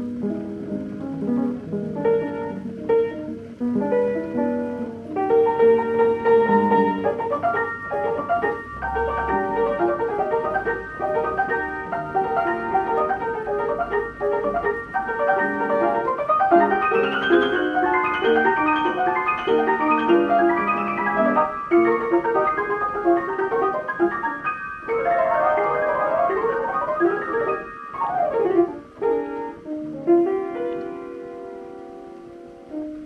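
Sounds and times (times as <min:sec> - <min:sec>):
player piano playing: 0:00.0 - 0:33.0.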